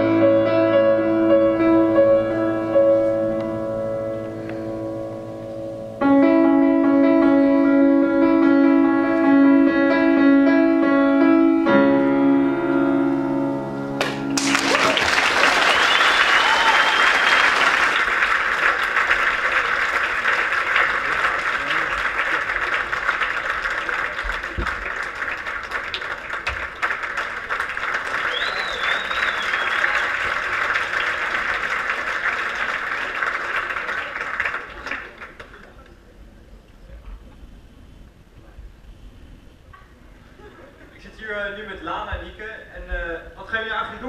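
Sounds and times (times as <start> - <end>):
audience applauding: 14.0 - 36.0
crowd whistles: 14.9 - 18.0, 28.1 - 30.4.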